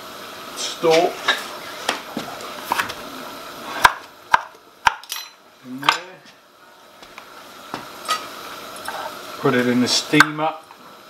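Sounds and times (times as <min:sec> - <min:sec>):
knife chopping on wooden board: 0:03.8 - 0:05.0.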